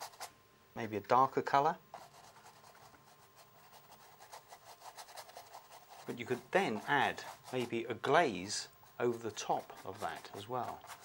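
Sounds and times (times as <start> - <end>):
paintbrush bristles scrubbing: 3.7 - 7.9, 8.5 - 11.0.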